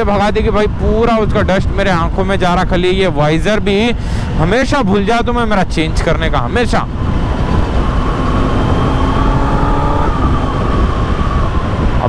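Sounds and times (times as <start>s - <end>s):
wind noise on microphone: 0.0s - 12.0s
motorcycle engine whine: 6.4s - 12.0s.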